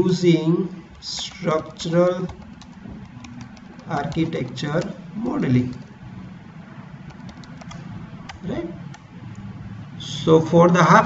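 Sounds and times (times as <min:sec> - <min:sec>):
computer keyboard keystrokes: 0:00.9 - 0:06.0, 0:07.1 - 0:09.5.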